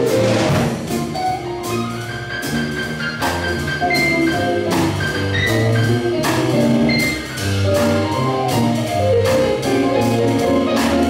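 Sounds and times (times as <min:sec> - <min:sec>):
drum kit: 0:00.0 - 0:11.0
walking bass line: 0:00.0 - 0:11.0
electric keyboard: 0:00.9 - 0:11.0.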